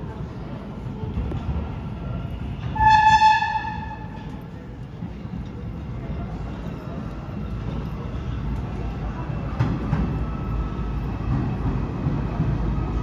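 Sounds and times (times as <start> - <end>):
subway train rumbling: 0.0 - 13.0
train horn blast: 2.7 - 4.2.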